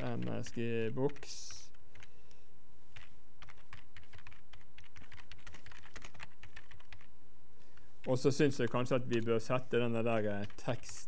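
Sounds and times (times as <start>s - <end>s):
typing on computer keyboard: 0.0s - 2.1s, 3.0s - 7.1s, 10.0s - 11.0s.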